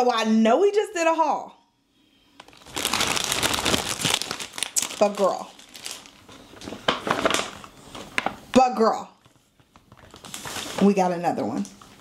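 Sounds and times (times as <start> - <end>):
shopping bag rustling and crinkling: 2.4 - 8.4, 9.2 - 12.0.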